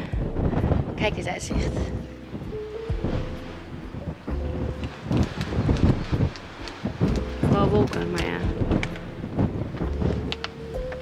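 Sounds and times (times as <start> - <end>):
background music steady notes: 0.0 - 11.0
wind buffeting microphone: 0.0 - 11.0.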